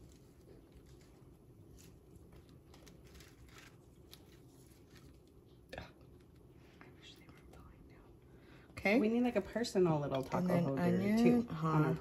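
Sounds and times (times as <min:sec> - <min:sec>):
woman speaking: 0:08.8 - 0:12.0.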